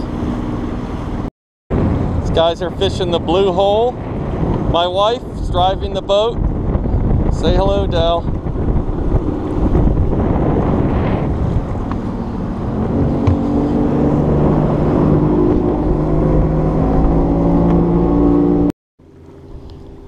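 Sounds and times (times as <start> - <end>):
boat motor running: 0.0 - 20.0
wind and water rushing: 0.0 - 20.0.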